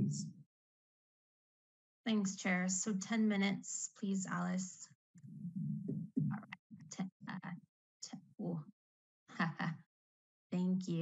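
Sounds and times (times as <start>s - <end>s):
person speaking in fragments: 0.0s - 0.3s.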